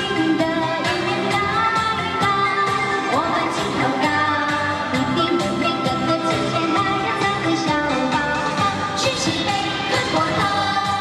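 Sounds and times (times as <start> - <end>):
pop backing track with beat: 0.0 - 11.0
woman singing into a microphone: 0.0 - 11.0.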